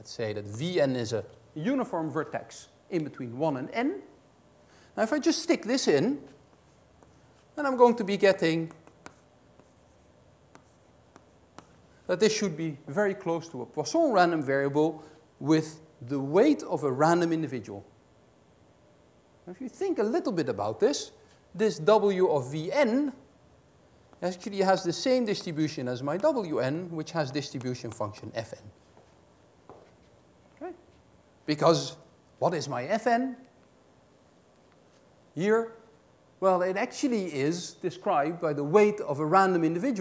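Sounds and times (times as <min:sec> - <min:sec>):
chalk tapping and scraping: 0:06.2 - 0:11.9, 0:24.1 - 0:30.2.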